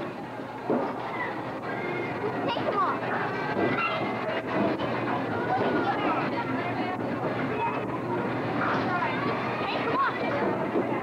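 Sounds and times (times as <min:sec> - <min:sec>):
children's voices: 0:00.9 - 0:11.0.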